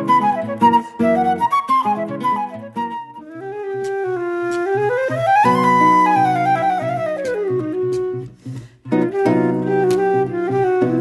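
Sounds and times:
classical guitar chords: 0.0s - 11.0s
flute melody: 0.0s - 11.0s.

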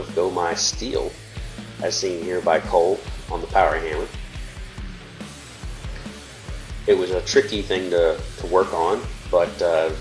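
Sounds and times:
background music with bass: 0.0s - 10.0s.

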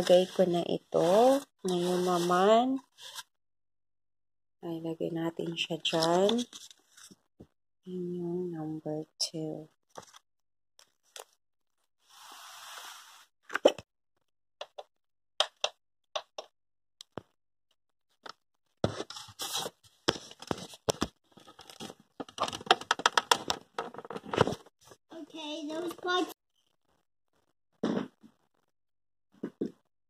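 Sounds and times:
plastic rattles: 20.9s - 24.6s
plastic clicks and knocks: 21.7s - 24.6s.

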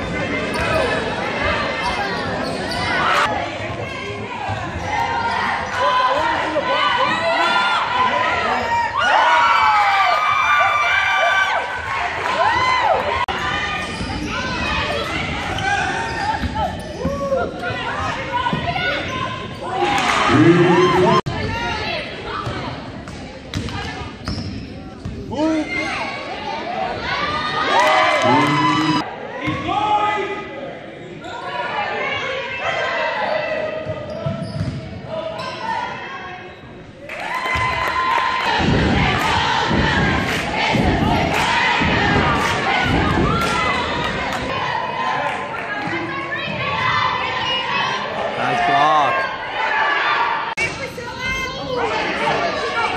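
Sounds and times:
crowd voices and shouts: 0.0s - 52.9s
shoes squeaking on gym floor: 1.8s - 3.2s, 15.5s - 17.3s, 24.2s - 25.1s, 34.0s - 34.8s.

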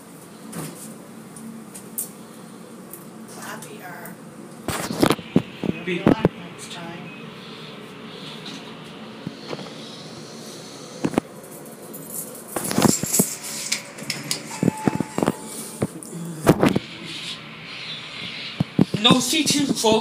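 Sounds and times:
elevator hum: 0.0s - 20.0s
elevator doors opening: 12.2s - 16.0s
brief steady tone: 14.4s - 15.9s.

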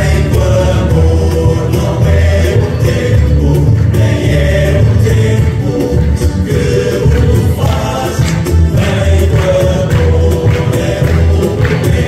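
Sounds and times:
many voices singing together: 0.0s - 12.0s
steady beat: 0.0s - 12.0s
strummed string instruments: 0.0s - 12.0s.

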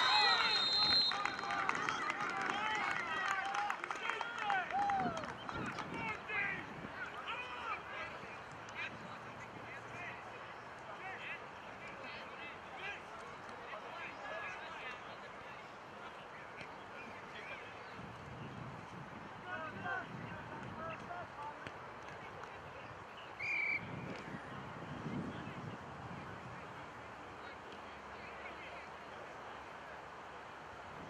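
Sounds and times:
steady background noise: 0.0s - 31.0s.

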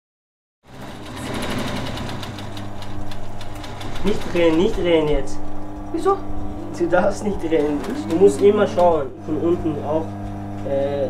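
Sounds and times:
sewing machine stitching: 0.7s - 5.4s, 7.2s - 9.0s.

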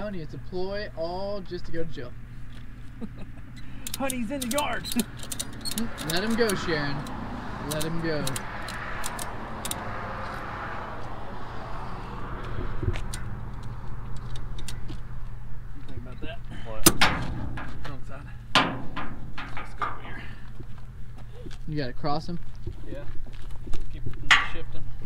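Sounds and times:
ratchet strap metal clicks and clanks: 3.6s - 9.8s.

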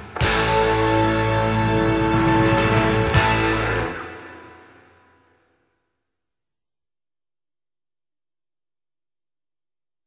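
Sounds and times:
song: 0.0s - 5.4s.

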